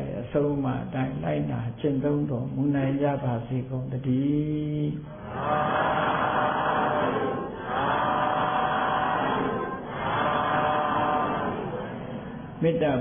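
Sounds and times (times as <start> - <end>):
many voices calling out together: 5.1 - 12.4.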